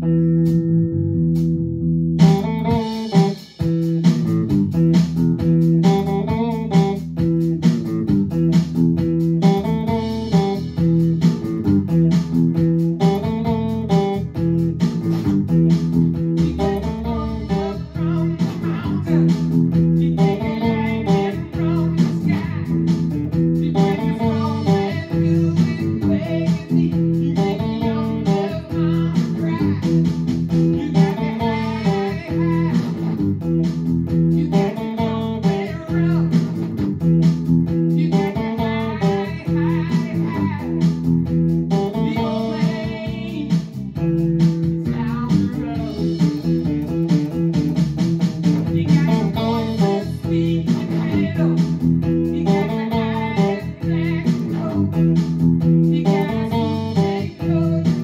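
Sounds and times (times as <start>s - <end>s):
electric guitar picked notes: 0.0s - 58.0s
held low note: 15.8s - 19.9s.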